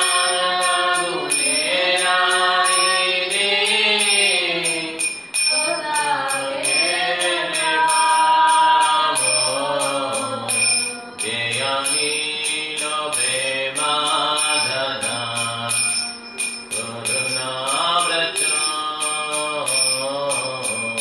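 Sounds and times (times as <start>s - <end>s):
man chanting a devotional melody: 0.0s - 5.2s, 5.9s - 21.0s
hand cymbals ringing: 0.0s - 21.0s.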